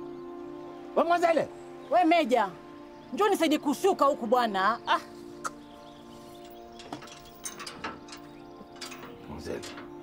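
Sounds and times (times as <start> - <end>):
metal latch clicking and rattling: 6.5 - 10.0.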